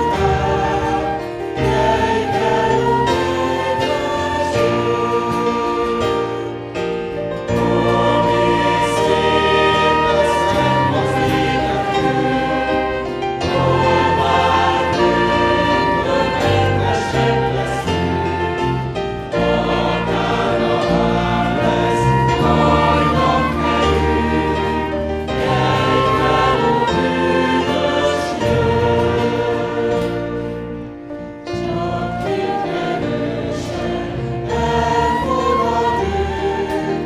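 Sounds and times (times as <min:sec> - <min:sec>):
congregation singing a hymn: 0:00.0 - 0:37.0.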